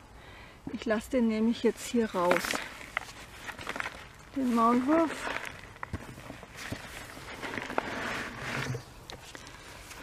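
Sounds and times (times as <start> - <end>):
footsteps through long grass: 2.2 - 8.3.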